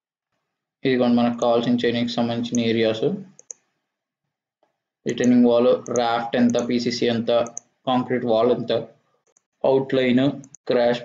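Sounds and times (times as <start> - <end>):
computer mouse clicks: 2.5 - 2.7, 3.3 - 3.7, 5.2 - 6.8, 7.4 - 7.8, 9.2 - 9.5, 10.4 - 10.6.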